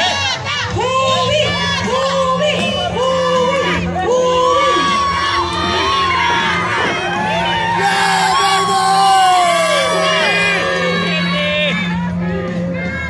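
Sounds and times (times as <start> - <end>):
crowd cheering and shouting: 0.0 - 13.0.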